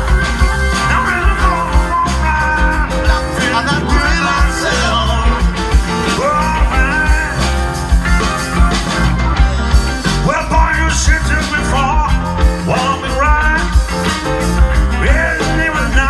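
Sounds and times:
rock band playing: 0:00.0 - 0:16.0
steady drum beat: 0:00.0 - 0:16.0.

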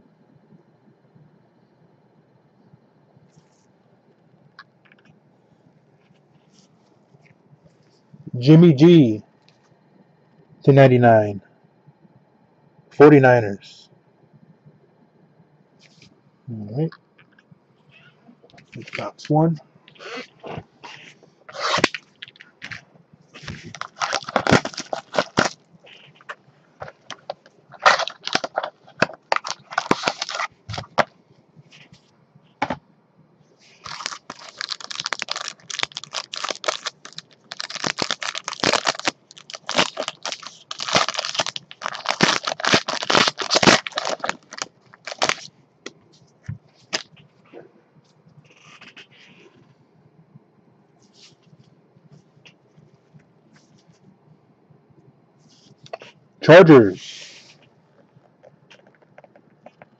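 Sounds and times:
plastic wrapping tearing and crinkling: 0:20.0 - 0:22.8, 0:23.4 - 0:31.1, 0:33.7 - 0:45.5
cardboard packaging handled: 0:23.4 - 0:25.6, 0:26.8 - 0:31.1, 0:33.8 - 0:45.5.

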